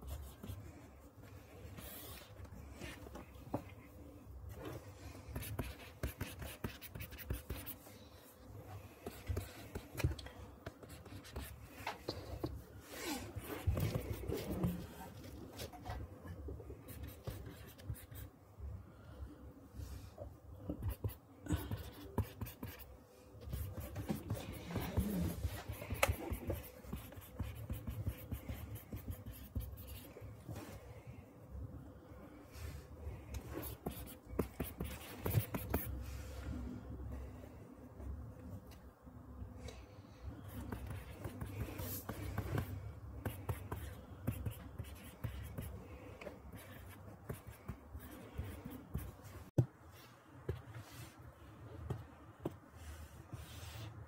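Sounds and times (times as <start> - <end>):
pen scratching on paper: 5.3 - 7.8, 10.6 - 11.6, 16.9 - 18.3, 20.8 - 30.1, 33.6 - 35.9, 40.5 - 45.7.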